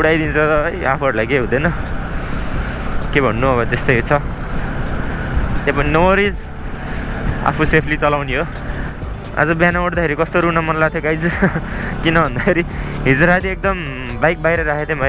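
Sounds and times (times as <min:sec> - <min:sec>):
man speaking: 0:00.0 - 0:01.8, 0:03.0 - 0:04.3, 0:05.6 - 0:06.5, 0:07.4 - 0:08.6, 0:09.4 - 0:15.0
background music: 0:00.0 - 0:15.0
motorcycle being ridden: 0:00.0 - 0:15.0.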